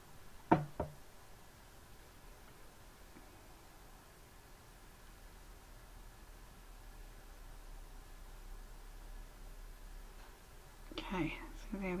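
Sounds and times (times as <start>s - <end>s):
knocks on wooden table: 0.5s - 1.0s.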